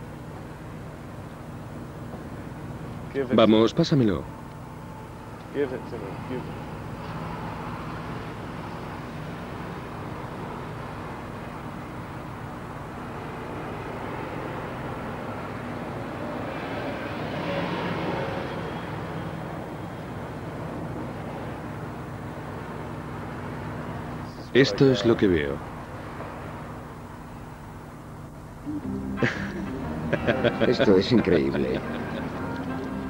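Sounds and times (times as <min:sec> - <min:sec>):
drone of passing vehicles: 0:00.0 - 0:33.0
vehicle going by: 0:05.5 - 0:27.0, 0:28.6 - 0:33.0.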